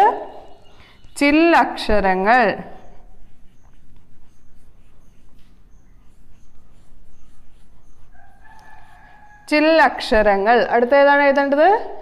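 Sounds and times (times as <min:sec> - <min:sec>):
chalk scratching on blackboard: 0:01.5 - 0:10.3.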